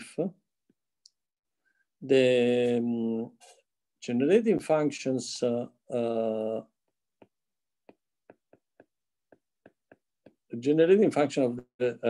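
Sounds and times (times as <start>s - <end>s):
stylus tapping a screen: 6.4s - 11.0s.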